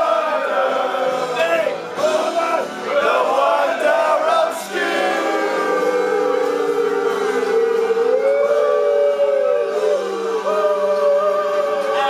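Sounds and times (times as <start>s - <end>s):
men singing a football chant: 0.0s - 8.8s.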